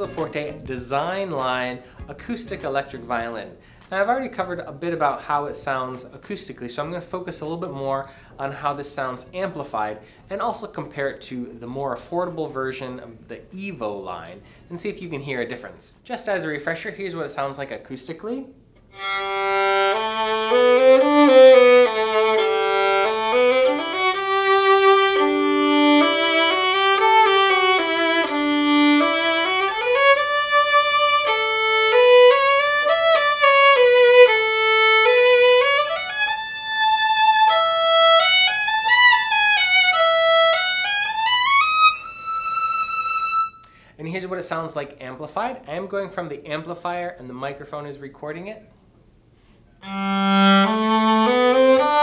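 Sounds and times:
violin playing slow melody: 0:00.0 - 0:03.3, 0:18.9 - 0:43.7, 0:49.8 - 0:52.0.

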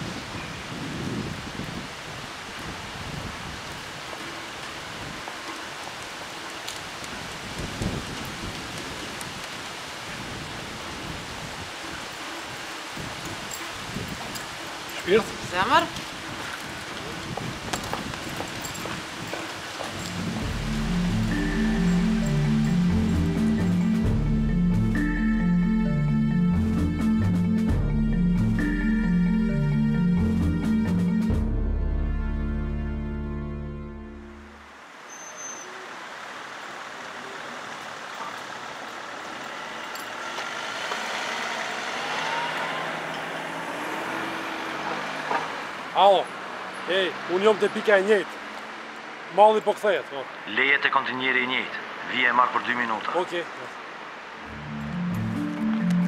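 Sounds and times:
outdoor background hiss: 0:00.0 - 0:26.6, 0:34.0 - 0:56.0
road traffic noise: 0:00.0 - 0:31.5, 0:32.1 - 0:56.0
soundtrack music with low notes: 0:20.1 - 0:34.6, 0:54.5 - 0:56.0
music sting: 0:54.5 - 0:56.0.

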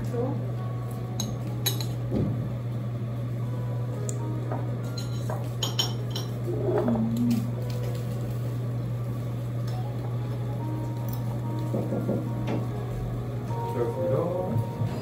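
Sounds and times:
steady low hum: 0:00.0 - 0:15.0
tableware clinking: 0:01.2 - 0:02.0, 0:04.6 - 0:07.0.

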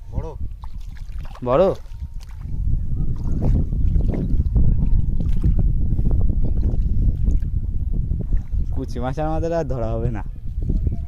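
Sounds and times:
wind buffeting microphone: 0:00.0 - 0:11.0
hands squelching in mud: 0:00.6 - 0:02.5.

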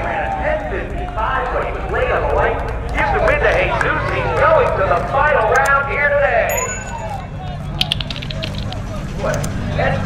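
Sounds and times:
men talking: 0:00.0 - 0:10.0
steady low rumble: 0:00.8 - 0:10.0.

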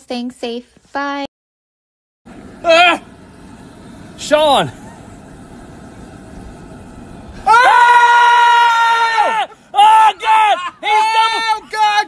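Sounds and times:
man screaming in pain: 0:02.6 - 0:03.1, 0:07.4 - 0:12.0.

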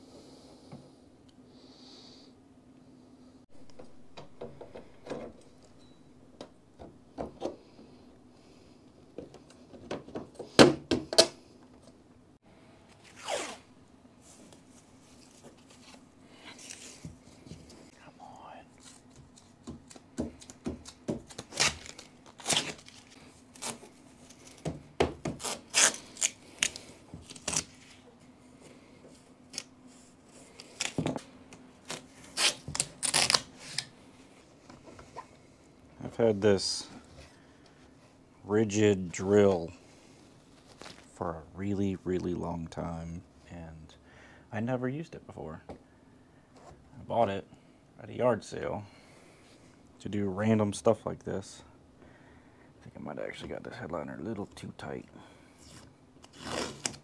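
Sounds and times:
tape being peeled and torn: 0:18.8 - 0:24.7, 0:25.3 - 0:28.0, 0:29.5 - 0:31.2, 0:31.8 - 0:33.9, 0:55.6 - 0:57.0.

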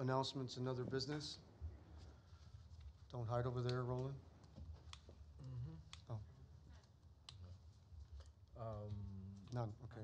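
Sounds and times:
person murmuring: 0:05.4 - 0:06.2.

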